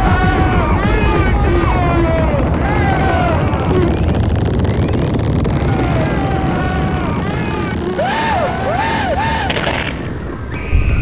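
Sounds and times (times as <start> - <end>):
deep rocket rumble: 0.0 - 11.0
warbling tones: 0.0 - 11.0.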